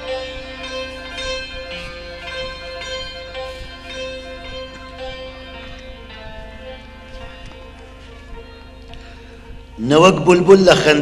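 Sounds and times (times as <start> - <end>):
hammered dulcimer notes: 0.0 - 11.0.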